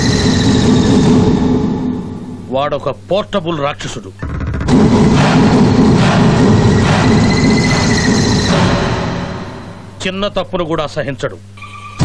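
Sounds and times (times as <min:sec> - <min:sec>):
dramatic film score: 0:00.0 - 0:02.5, 0:04.2 - 0:10.0.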